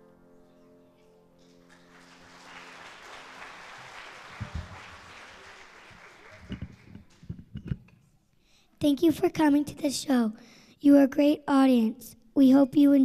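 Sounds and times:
audience applause: 0:01.4 - 0:07.4.

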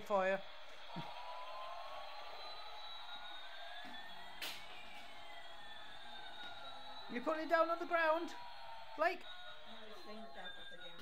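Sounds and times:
toy drone rotors whining: 0:09.2 - 0:11.0.

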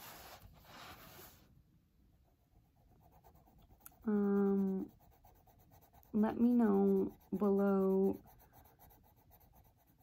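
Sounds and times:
pencil shading on paper: 0:02.4 - 0:10.0.

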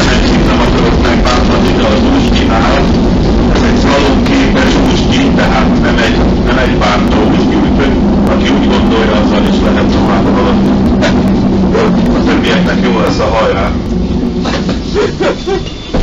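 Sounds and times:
indistinct voices: 0:00.0 - 0:16.0
low hum: 0:00.0 - 0:16.0
tram running noise: 0:00.0 - 0:16.0.

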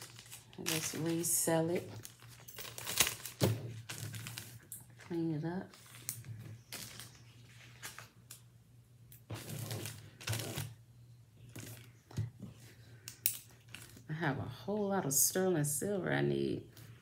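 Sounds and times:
plastic bag crinkling: 0:00.0 - 0:08.2.

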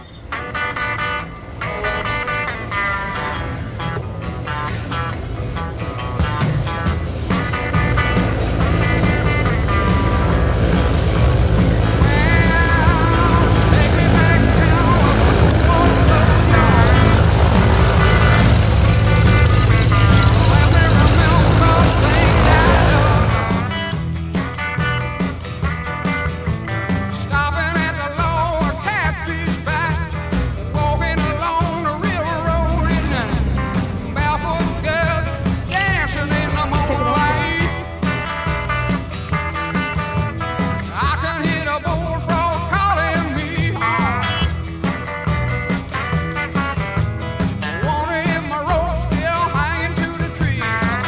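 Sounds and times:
light aircraft engine and propeller: 0:00.0 - 0:27.2, 0:28.5 - 0:51.0
background music: 0:00.0 - 0:51.0.

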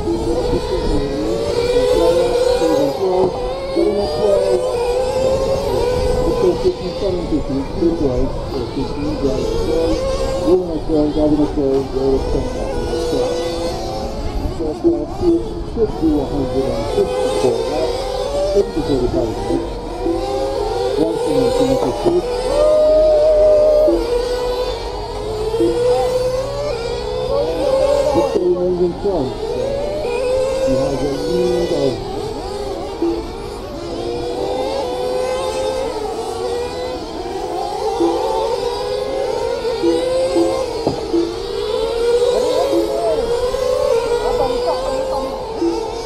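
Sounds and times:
rc car motors revving: 0:00.0 - 0:46.0.

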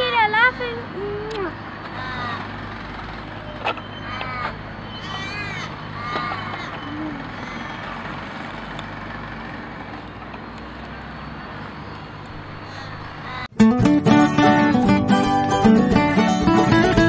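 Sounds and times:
distant traffic hum: 0:00.0 - 0:13.5
crow cawing: 0:01.8 - 0:08.4, 0:11.1 - 0:13.5.

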